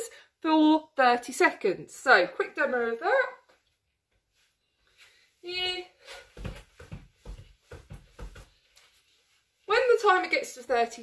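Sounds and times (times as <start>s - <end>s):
trainers thudding on laminate floor: 6.2s - 8.6s.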